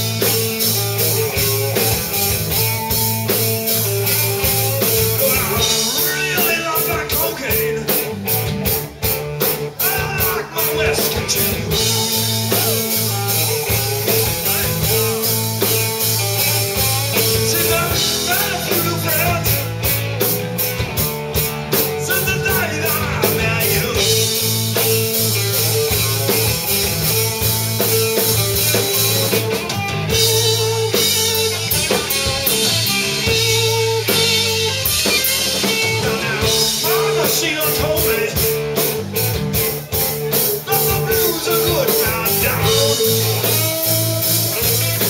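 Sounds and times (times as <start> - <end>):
drum and cymbal hits: 0.0 - 45.0
rock band playing live: 0.0 - 45.0.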